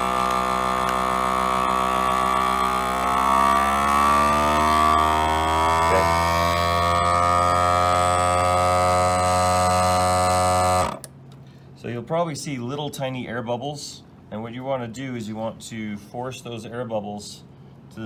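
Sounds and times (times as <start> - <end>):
vacuum sealer pump humming: 0.0 - 11.4.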